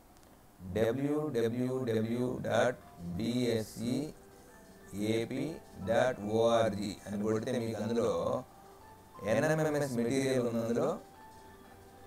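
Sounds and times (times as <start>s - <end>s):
man speaking: 0.6s - 4.2s, 4.9s - 8.5s, 9.2s - 11.1s.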